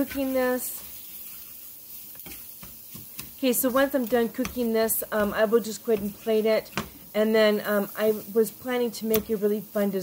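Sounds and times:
spatula stirring: 0.0s - 8.5s
eggs frying in a pan: 0.0s - 10.0s
spatula tapping a pan: 2.2s - 7.0s.

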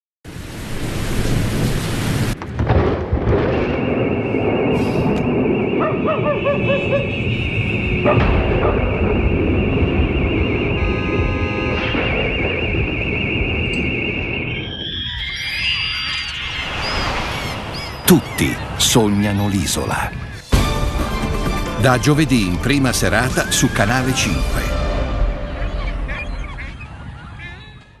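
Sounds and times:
dense rain hiss: 0.3s - 3.0s, 3.9s - 6.2s
low thunder rumbles: 0.6s - 15.2s
wavering high tone: 4.0s - 17.2s
bird calls sweeping in pitch: 5.8s - 8.2s, 14.5s - 18.8s.

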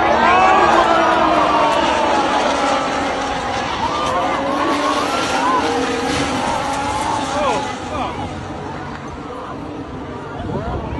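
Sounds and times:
spectators shouting: 0.0s - 9.8s
race car engines passing: 0.0s - 10.9s.

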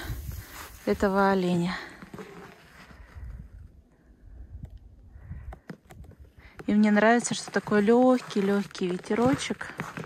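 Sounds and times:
wind rumble on microphone: 0.0s - 1.3s, 3.0s - 6.4s
footsteps in squeaking snow: 6.7s - 10.0s.

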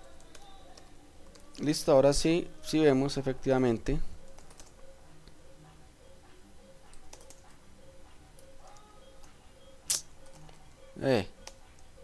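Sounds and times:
computer keyboard typing: 0.0s - 1.9s, 3.9s - 4.8s, 6.8s - 9.4s, 10.2s - 12.0s.

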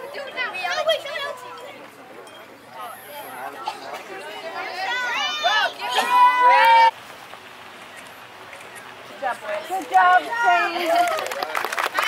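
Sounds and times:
overlapping voices chattering: 0.0s - 12.0s.

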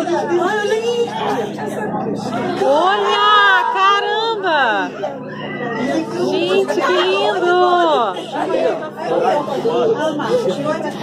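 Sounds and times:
people talking excitedly: 0.0s - 11.0s.

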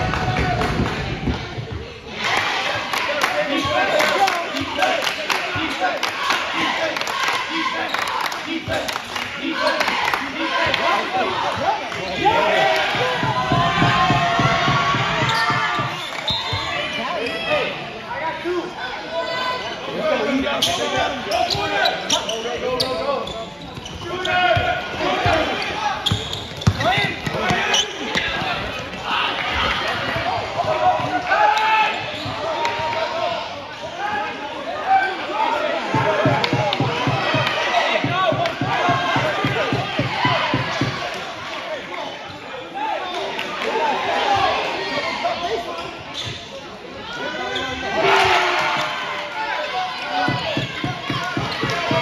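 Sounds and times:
crowd voices and shouting: 0.0s - 52.0s
basketball bouncing on court: 13.1s - 16.1s, 26.0s - 28.4s.

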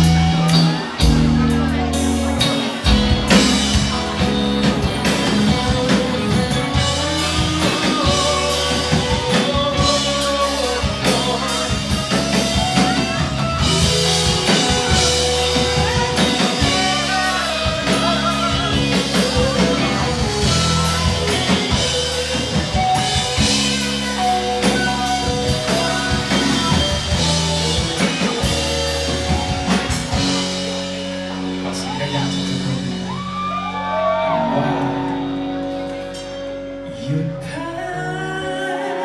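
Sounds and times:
drum kit: 0.0s - 36.8s
bass guitar: 0.0s - 39.0s
electric guitar: 0.0s - 39.0s.

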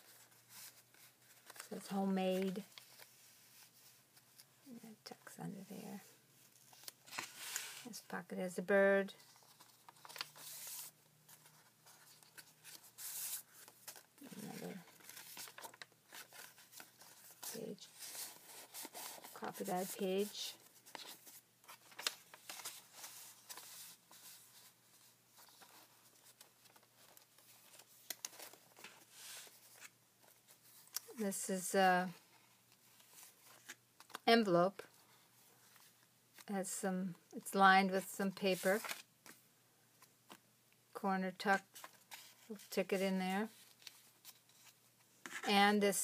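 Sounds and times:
paper rustling: 0.0s - 4.5s, 6.4s - 8.0s, 9.2s - 31.2s, 38.5s - 39.4s.

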